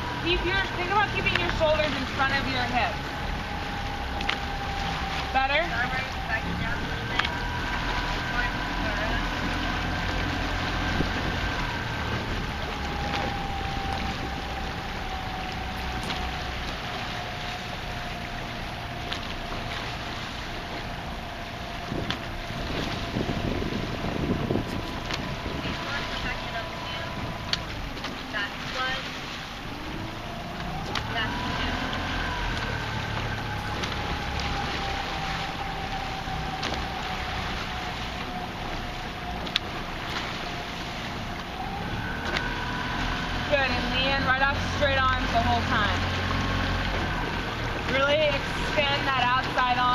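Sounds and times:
outboard motor running: 0.0s - 49.9s
wind on microphone: 0.0s - 49.9s.

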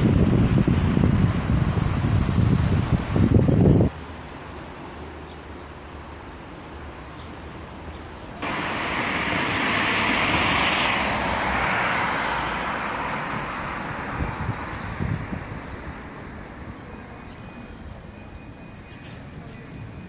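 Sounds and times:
vehicle passing: 8.4s - 16.5s.

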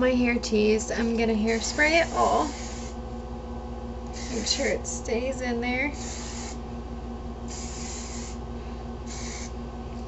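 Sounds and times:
hairspray hissing: 1.5s - 3.0s, 4.1s - 4.7s, 6.0s - 6.6s, 7.5s - 8.4s, 9.1s - 9.5s.

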